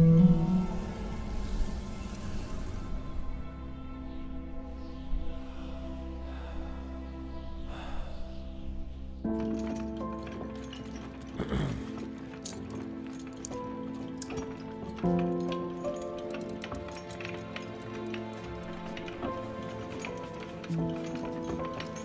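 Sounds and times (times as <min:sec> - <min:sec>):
film score sustained chords: 0:00.0 - 0:22.0.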